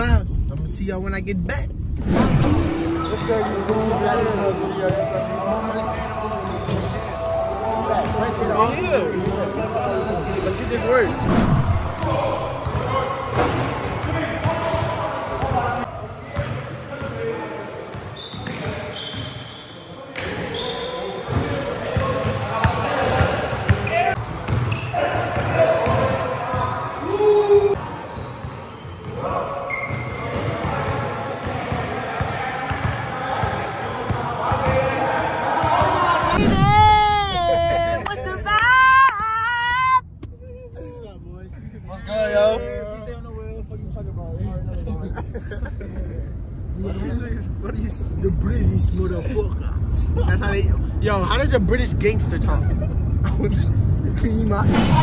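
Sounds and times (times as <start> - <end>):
indistinct voices echoing: 2.1 - 16.1
basketballs bouncing on gym floor: 11.6 - 14.8, 29.8 - 34.8.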